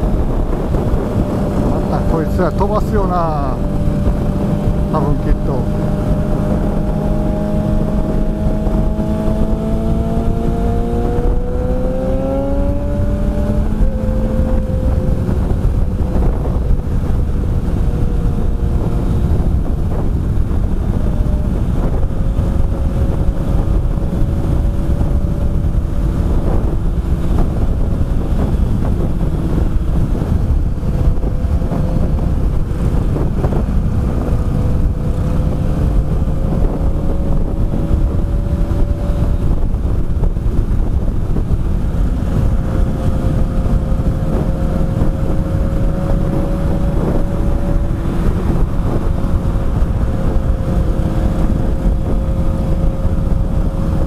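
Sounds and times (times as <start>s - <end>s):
motorcycle engine pulling hard: 0.0s - 54.0s
wind rush on microphone: 0.0s - 54.0s.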